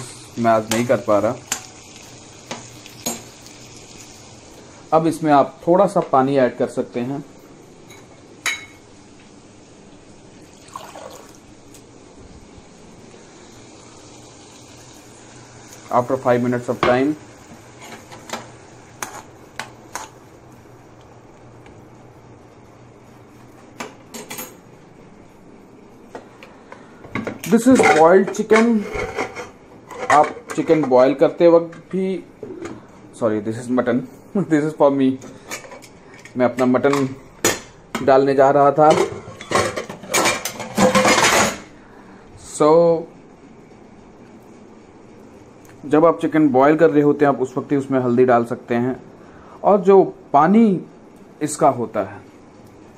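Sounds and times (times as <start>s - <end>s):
cookware and utensils clinking: 2.5s - 3.4s, 7.8s - 8.8s, 24.1s - 24.6s, 27.1s - 31.0s, 38.8s - 41.7s.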